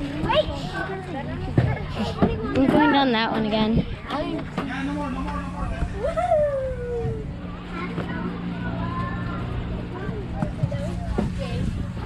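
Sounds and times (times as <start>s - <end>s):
faint voices talking: 0.0s - 12.0s
low mechanical hum: 0.0s - 12.0s.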